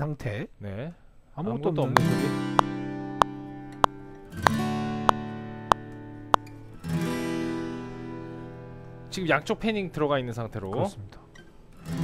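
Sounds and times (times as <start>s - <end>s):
acoustic guitar strums: 2.0s - 8.7s.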